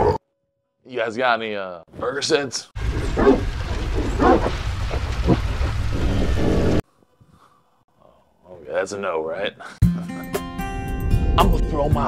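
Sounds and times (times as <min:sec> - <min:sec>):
distorted animal-like vocal effect: 0:02.8 - 0:06.8
heavy low rumble: 0:02.8 - 0:06.8.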